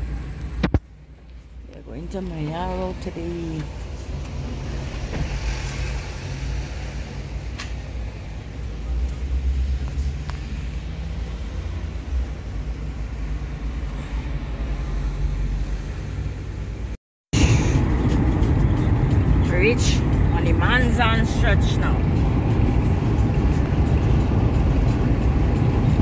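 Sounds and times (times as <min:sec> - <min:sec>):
car engine rumble: 0:00.0 - 0:26.0
road noise: 0:00.0 - 0:26.0.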